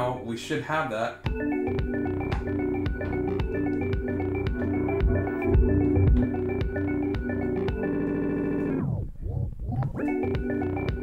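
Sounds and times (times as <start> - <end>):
electronic music loop: 1.2 - 11.0.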